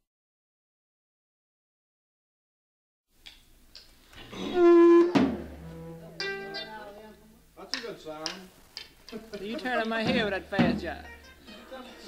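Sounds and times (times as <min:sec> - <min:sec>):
low steady hum: 0:03.6 - 0:07.7
stray musical notes: 0:04.2 - 0:07.3
held musical note: 0:04.3 - 0:07.1
voices: 0:04.3 - 0:12.0.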